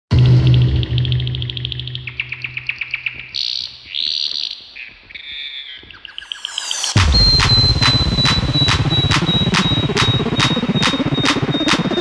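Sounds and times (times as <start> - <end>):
low bass note: 0.1 - 2.8
bird chirping: 1.0 - 10.9.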